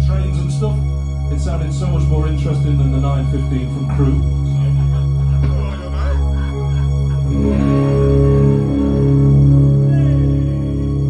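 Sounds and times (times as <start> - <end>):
electric guitar chords: 0.0 - 11.0
keyboard chords: 0.0 - 11.0
low bass note: 0.0 - 11.0.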